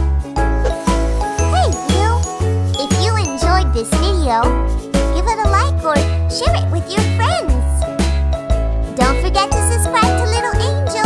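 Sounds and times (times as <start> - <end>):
children's jingle with bell tones: 0.4 - 5.8, 9.0 - 11.0.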